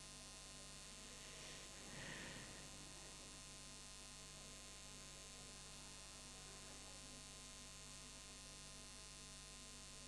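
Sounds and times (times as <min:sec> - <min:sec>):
low electrical mains hum: 0:00.0 - 0:10.0
faint hiss: 0:00.8 - 0:03.7.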